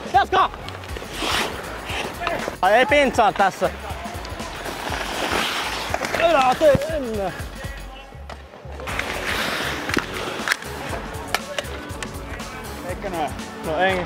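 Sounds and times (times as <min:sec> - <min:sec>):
hockey sticks and puck clacking: 0:00.1 - 0:12.5
ice skate blades scraping ice: 0:00.8 - 0:02.6, 0:04.3 - 0:07.5, 0:08.9 - 0:11.1.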